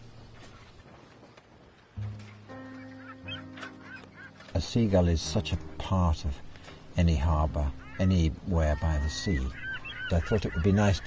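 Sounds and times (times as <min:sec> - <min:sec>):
gulls calling: 0:01.9 - 0:11.0
music of sustained low chords: 0:02.0 - 0:11.0.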